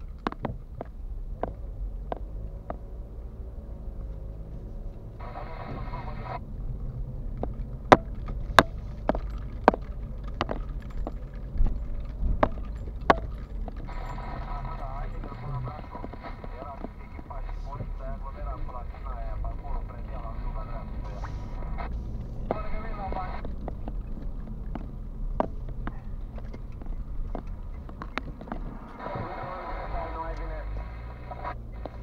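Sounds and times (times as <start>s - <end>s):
car engine and road rumble: 0.0s - 32.0s.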